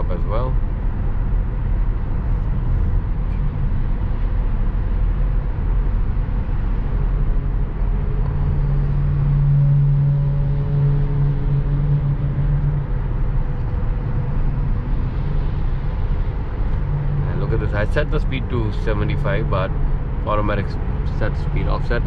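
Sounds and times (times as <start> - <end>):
low hum: 0.0 - 21.6
road and tyre noise in car cabin: 0.0 - 22.0.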